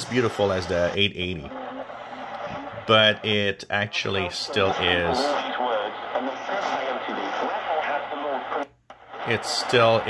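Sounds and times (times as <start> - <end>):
static hiss: 0.0 - 3.4, 4.2 - 10.0
radio voice through speaker: 2.4 - 10.0.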